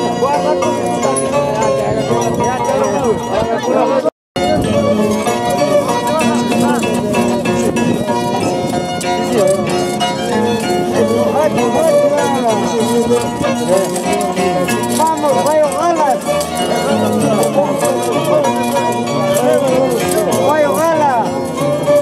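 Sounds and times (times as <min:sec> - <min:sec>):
harp plucked notes: 0:00.0 - 0:22.0
violin melody: 0:00.0 - 0:22.0.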